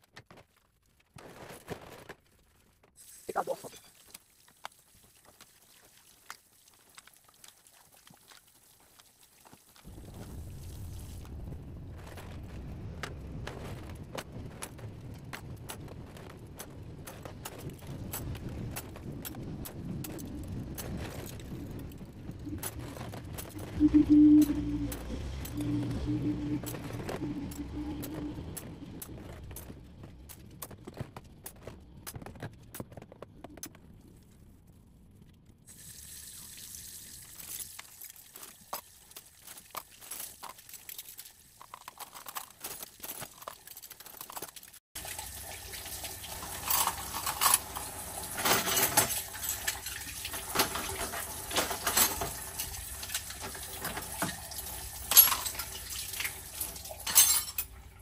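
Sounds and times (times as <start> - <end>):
metal utensils clinking: 46.5 - 52.4, 55.1 - 57.8.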